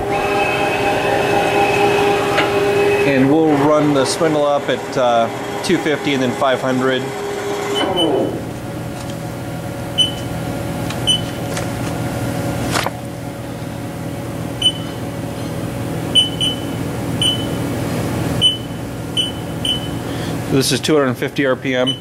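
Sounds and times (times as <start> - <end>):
lathe humming: 0.0 - 11.0
short electronic beeps: 10.0 - 10.2, 14.6 - 15.0, 16.1 - 17.6, 18.4 - 20.0.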